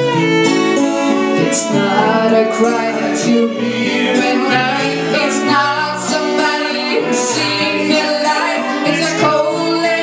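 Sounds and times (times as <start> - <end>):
acoustic guitars: 0.0 - 10.0
violin melody: 0.0 - 10.0.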